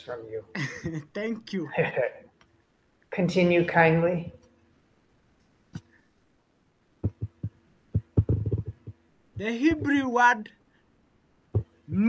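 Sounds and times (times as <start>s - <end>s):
dull low knocks: 7.0s - 10.0s.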